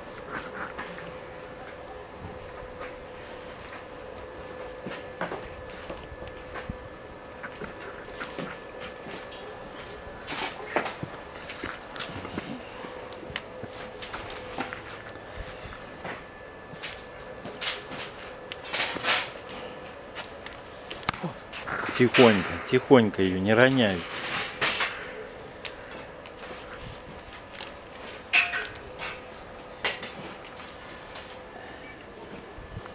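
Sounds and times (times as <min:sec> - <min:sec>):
bears scuffling: 0:00.0 - 0:31.4.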